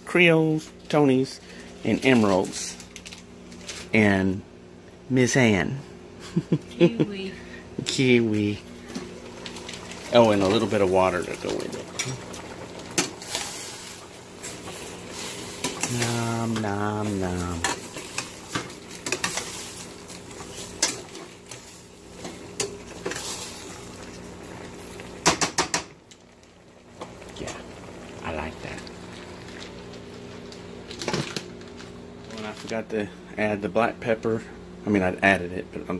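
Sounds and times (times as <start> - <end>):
food sizzling in a pot: 7.9 - 32.5.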